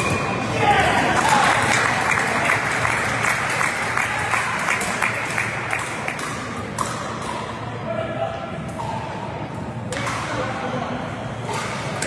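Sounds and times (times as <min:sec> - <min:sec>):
spectators clapping: 0:01.0 - 0:06.6.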